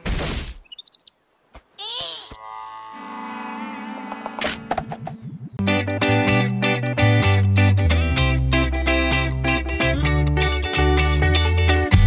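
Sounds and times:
cartoon sound effects: 1.8s - 3.0s
distorted electric guitar chords: 5.6s - 12.0s.

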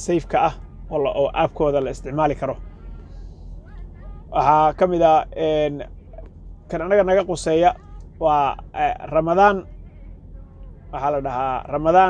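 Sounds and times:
man speaking: 0.0s - 2.6s, 4.4s - 9.6s, 11.0s - 12.0s
faint low hum: 0.0s - 12.0s.

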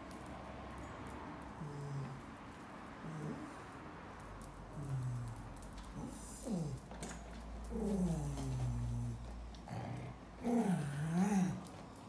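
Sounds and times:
dog growling: 1.6s - 2.2s, 3.0s - 3.6s, 4.7s - 11.8s.

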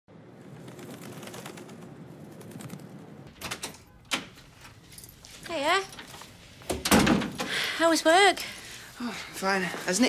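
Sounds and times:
outdoor background hiss: 1.6s - 10.0s.

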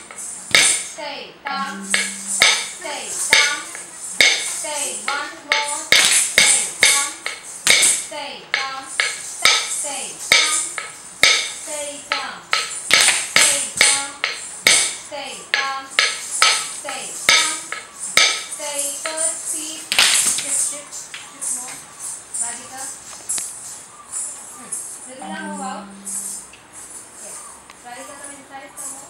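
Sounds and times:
stick striking wooden block: 0.0s - 0.9s, 1.5s - 19.3s
woman chanting rhythmic syllables: 0.9s - 3.8s, 4.5s - 7.4s, 8.0s - 10.9s, 11.6s - 12.5s, 13.3s - 14.4s, 15.0s - 16.0s, 16.7s - 17.9s, 18.5s - 20.9s, 25.1s - 26.4s.

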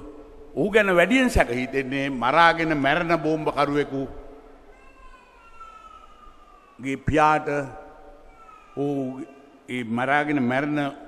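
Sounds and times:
man speaking amplified: 0.0s - 4.2s, 6.8s - 7.9s, 8.8s - 11.0s.

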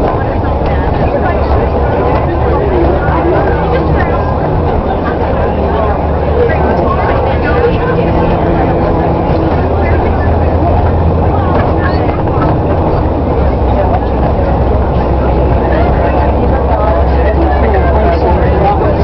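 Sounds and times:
bus engine drone: 0.0s - 19.0s
indistinct voices talking: 0.0s - 19.0s
road rumble: 0.0s - 19.0s.

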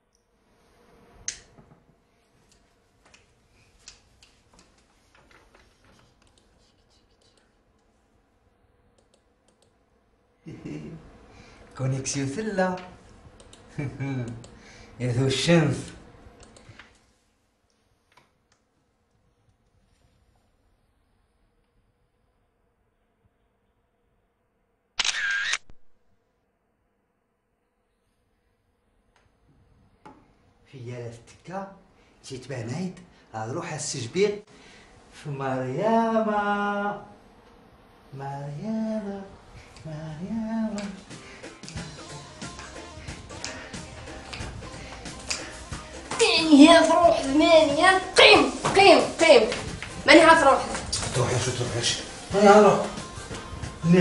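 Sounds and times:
faint click: 9.0s - 9.8s, 16.4s - 17.0s
phone camera shutter sound: 25.0s - 25.9s.

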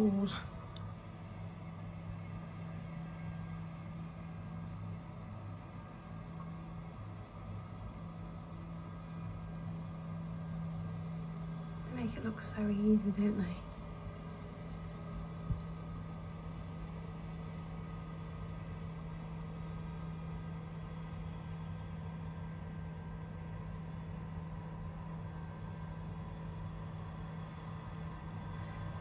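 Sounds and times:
farm machinery engine droning: 0.0s - 29.0s.

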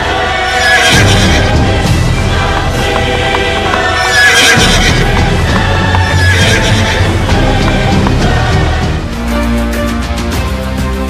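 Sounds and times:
music: 0.0s - 11.0s
galloping hoofbeats: 1.6s - 8.9s.

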